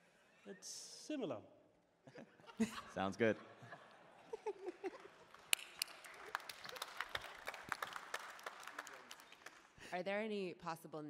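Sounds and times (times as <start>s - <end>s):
hand claps: 4.9s - 9.8s.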